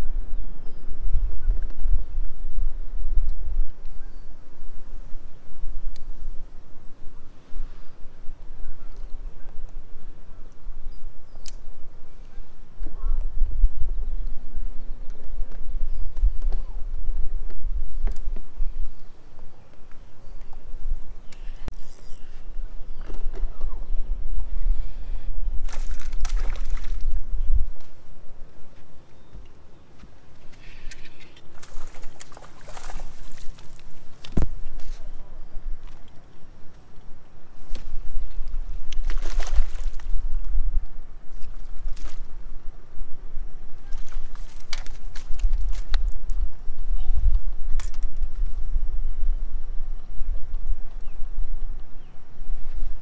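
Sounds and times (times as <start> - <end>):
wind rumble on microphone: 0.0 - 53.0.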